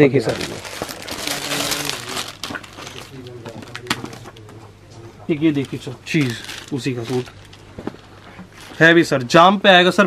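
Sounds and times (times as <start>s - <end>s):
plastic wrapping crinkling: 0.0s - 4.6s, 5.3s - 9.1s.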